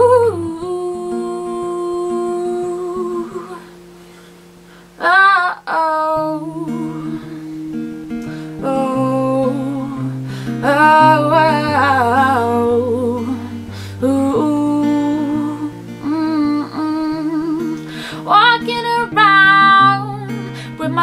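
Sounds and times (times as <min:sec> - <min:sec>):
woman singing wordless phrases: 0:00.0 - 0:03.8, 0:05.0 - 0:21.0
acoustic guitar chords: 0:00.0 - 0:21.0.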